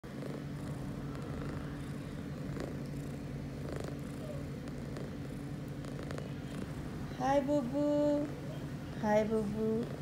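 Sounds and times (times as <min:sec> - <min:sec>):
cat purring: 0:00.1 - 0:08.3, 0:09.2 - 0:10.0.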